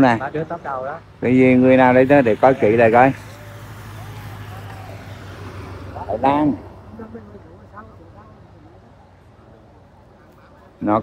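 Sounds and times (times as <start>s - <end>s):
faint distant voices: 0.0s - 11.0s
roadside traffic noise: 0.0s - 11.0s.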